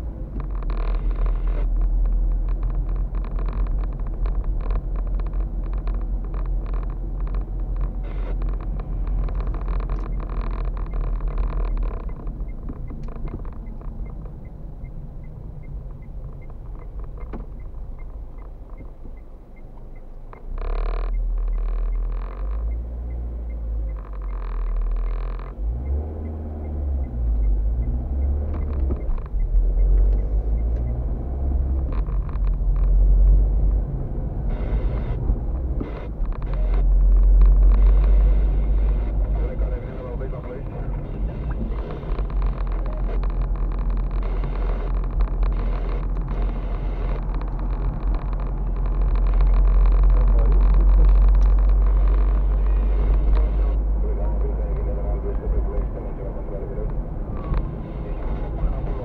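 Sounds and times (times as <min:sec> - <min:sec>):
car interior engine and tyre rumble: 0:00.0 - 0:59.0.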